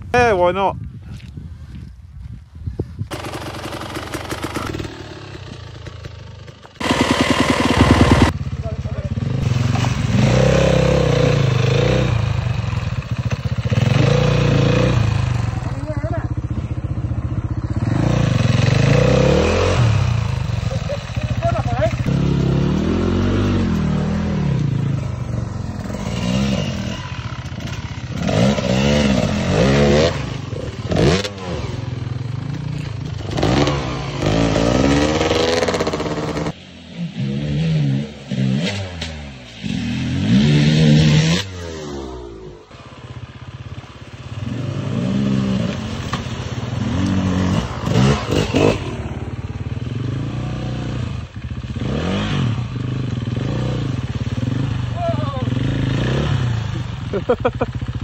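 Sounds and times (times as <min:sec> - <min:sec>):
motorcycle engines revving: 0:03.1 - 0:58.0
motorcycle splashing through water: 0:43.8 - 0:50.8, 0:52.4 - 0:58.0.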